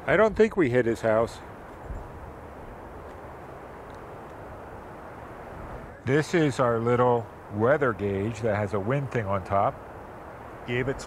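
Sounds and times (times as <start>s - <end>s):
outdoor rumble and hiss: 0.0s - 11.0s.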